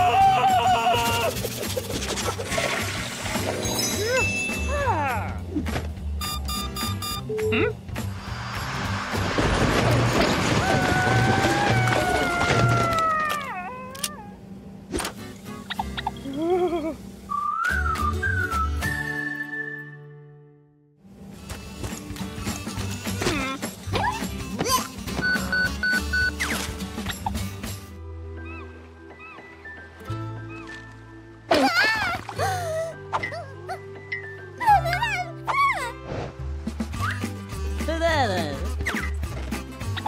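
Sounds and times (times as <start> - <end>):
background music with low notes: 14.5 - 40.0
whistled tune over deep bass: 17.3 - 20.6, 28.3 - 31.3, 37.0 - 37.4
squeaky cartoon character cries: 34.6 - 36.0.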